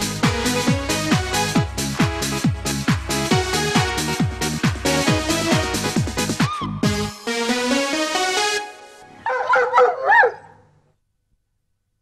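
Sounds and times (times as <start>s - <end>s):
dog barking: 9.2s - 10.6s.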